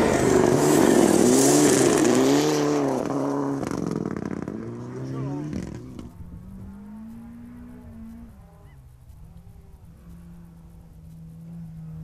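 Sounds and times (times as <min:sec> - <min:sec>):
distant rally car engine: 0:00.0 - 0:12.0.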